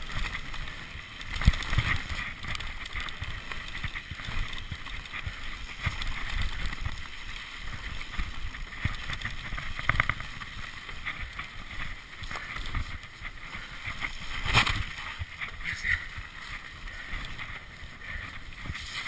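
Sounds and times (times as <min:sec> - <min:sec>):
bike rattling: 0:00.0 - 0:19.0
bike tyre noise on dirt: 0:00.0 - 0:19.0.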